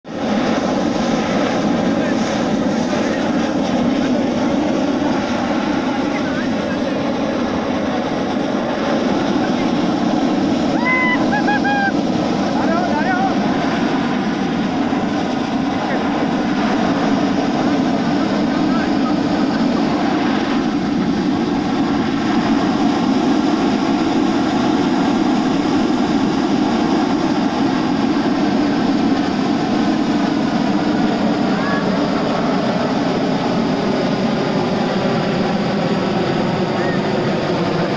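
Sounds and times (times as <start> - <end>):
propane burner blast: 0.1 - 35.6.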